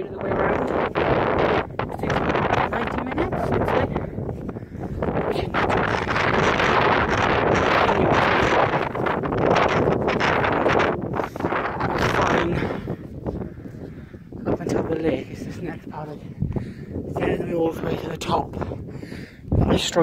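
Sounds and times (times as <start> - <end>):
wind on microphone: 0.0 - 20.0.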